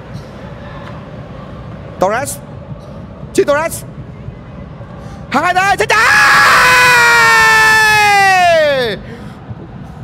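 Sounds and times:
man shouting excitedly: 0:05.4 - 0:09.0.

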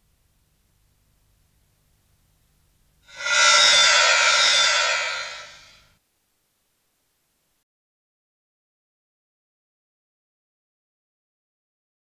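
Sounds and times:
shimmering music sting: 0:03.1 - 0:05.8.

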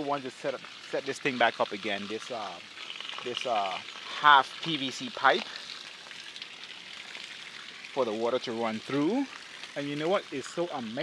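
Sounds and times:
spring water running: 0:00.0 - 0:11.0.

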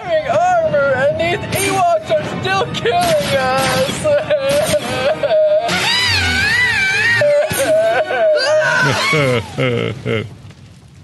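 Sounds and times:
high-pitched wavering wail: 0:03.3 - 0:09.3.

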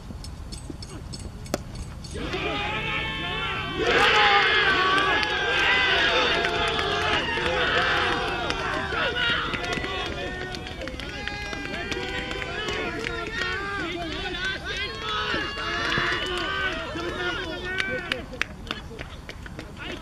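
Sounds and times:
many voices calling out: 0:02.1 - 0:18.3.

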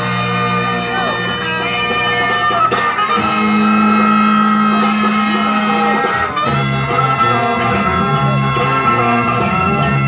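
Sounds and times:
blues-rock band holding chord: 0:00.0 - 0:10.0.

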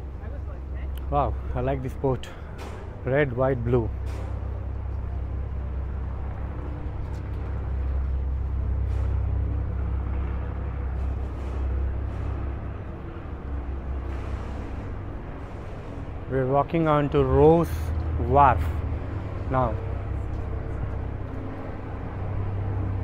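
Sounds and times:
outdoor noise haze: 0:00.0 - 0:23.0
steady low rumble: 0:00.0 - 0:23.0.

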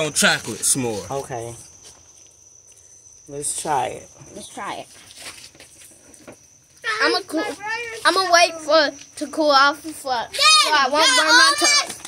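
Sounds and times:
crickets trilling: 0:00.0 - 0:12.0
child speaking: 0:04.4 - 0:04.9, 0:06.8 - 0:12.0.

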